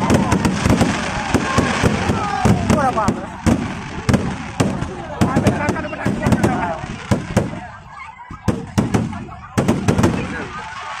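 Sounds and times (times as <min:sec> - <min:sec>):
fireworks bangs: 0:00.0 - 0:11.0.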